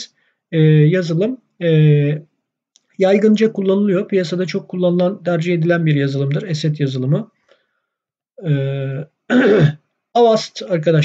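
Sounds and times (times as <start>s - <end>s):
man's drawn-out hesitation sound: 8.4s - 9.0s
man clearing throat: 8.4s - 9.8s.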